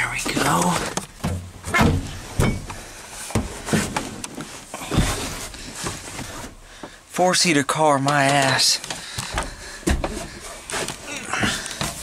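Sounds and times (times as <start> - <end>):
dull knocks and bumps: 0.1 - 4.2, 8.1 - 12.0.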